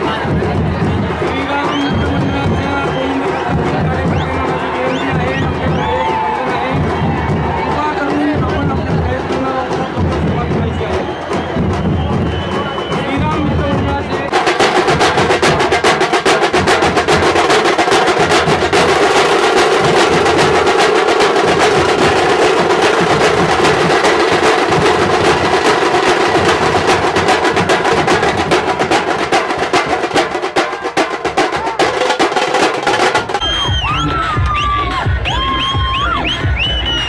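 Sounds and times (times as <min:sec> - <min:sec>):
drums beaten fast with sticks: 0:00.0 - 0:37.0.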